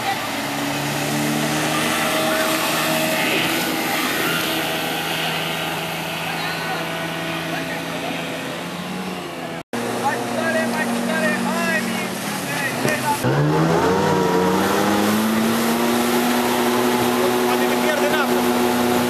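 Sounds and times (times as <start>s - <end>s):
speedboat engine revving: 0.0s - 19.0s
water rushing in wake: 0.0s - 19.0s.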